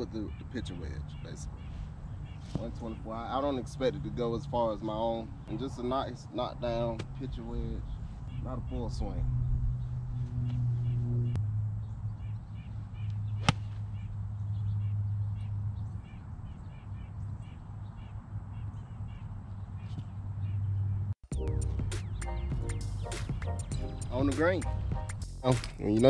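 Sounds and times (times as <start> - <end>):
golf club striking ball: 13.4 - 13.9
background music: 21.3 - 26.0.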